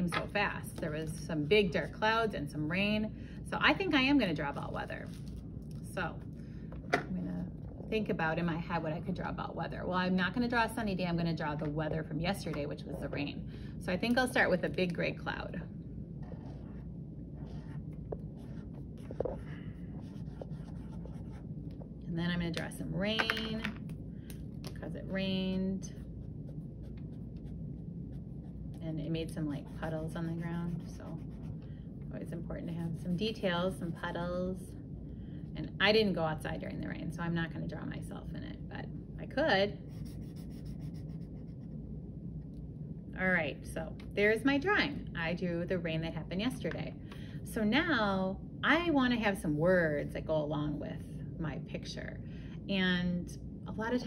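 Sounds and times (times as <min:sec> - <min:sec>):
low room hum: 0:00.0 - 0:54.0
marker drawing on paper: 0:16.2 - 0:21.4, 0:29.5 - 0:31.5, 0:39.9 - 0:41.8.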